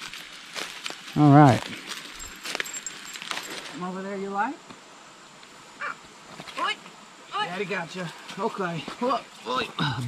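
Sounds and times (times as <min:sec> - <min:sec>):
footsteps crunching in dry leaves: 0:00.0 - 0:03.8.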